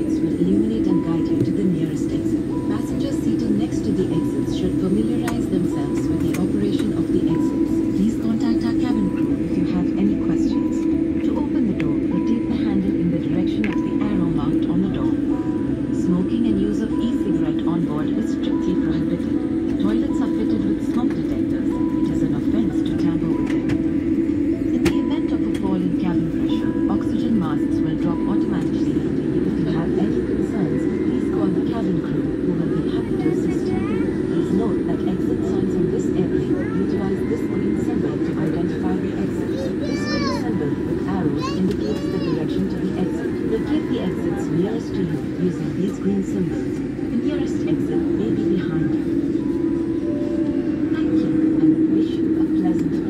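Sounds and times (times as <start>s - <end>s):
airliner cabin hum: 0.0s - 53.0s
passengers' voices: 0.0s - 53.0s
people talking: 0.0s - 53.0s.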